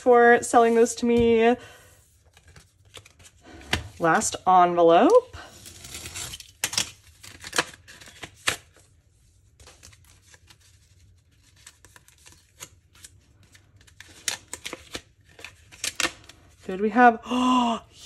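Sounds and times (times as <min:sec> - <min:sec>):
paper rustling and crinkling: 0:02.2 - 0:04.1, 0:05.7 - 0:16.7
cutter slicing envelope open: 0:05.5 - 0:08.8.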